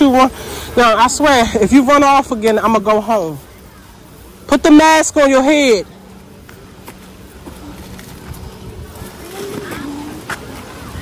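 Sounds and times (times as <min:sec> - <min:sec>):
people and children calling: 0:00.0 - 0:11.0.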